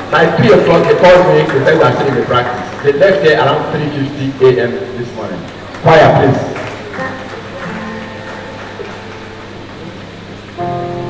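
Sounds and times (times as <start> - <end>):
small ensemble holding chords: 6.2 - 11.0.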